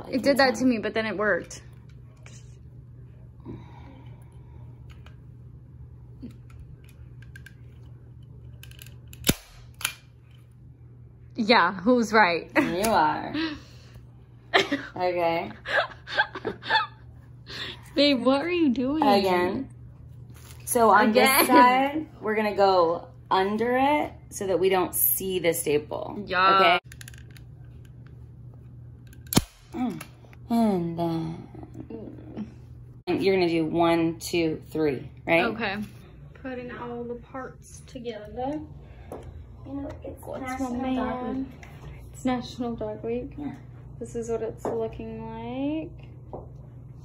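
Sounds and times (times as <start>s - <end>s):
staple gun snap: 8.6s - 10.0s, 29.1s - 29.8s.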